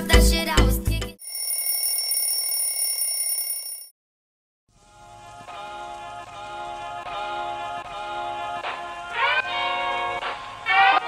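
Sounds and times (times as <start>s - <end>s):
high-pitched electronic alarm: 1.2s - 3.9s.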